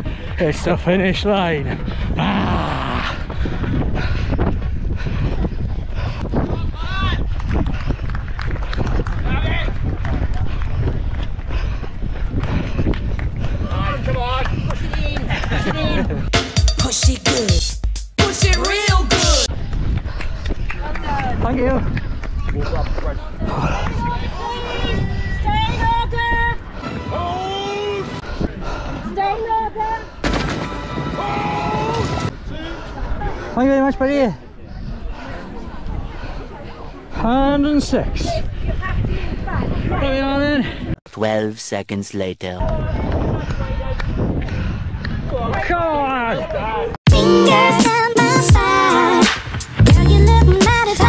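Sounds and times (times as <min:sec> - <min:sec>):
wind rumble on microphone: 0:00.0 - 0:16.3, 0:19.5 - 0:27.3, 0:30.8 - 0:41.0, 0:42.6 - 0:47.0
people shouting: 0:31.2 - 0:32.3.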